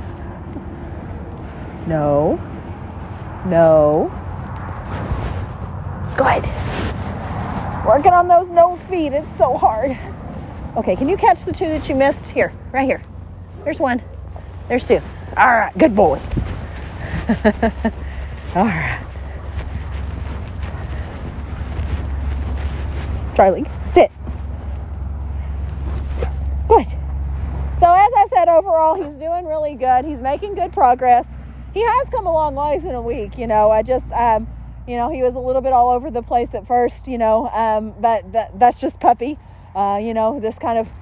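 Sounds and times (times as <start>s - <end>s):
wind rumbling on microphone: 0.0s - 41.0s.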